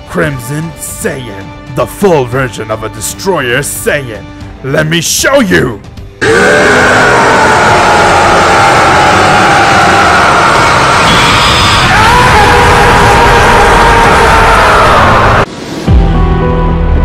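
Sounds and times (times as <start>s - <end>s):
man screaming loudly: 6.2s - 11.0s, 11.7s - 15.4s.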